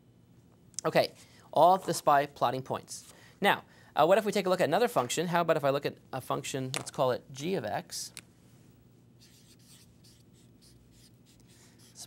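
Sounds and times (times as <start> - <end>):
marker writing on whiteboard: 9.2 - 12.0.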